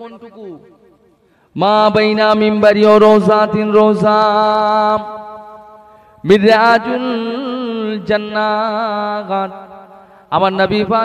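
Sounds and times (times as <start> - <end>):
man chanting sermon: 0.0 - 0.8, 1.5 - 11.0.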